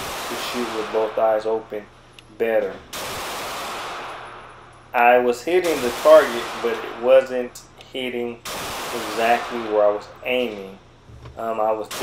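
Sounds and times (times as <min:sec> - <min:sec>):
pistol shot with echo: 0:00.0 - 0:01.6, 0:02.9 - 0:04.7, 0:05.6 - 0:07.3, 0:08.4 - 0:10.1.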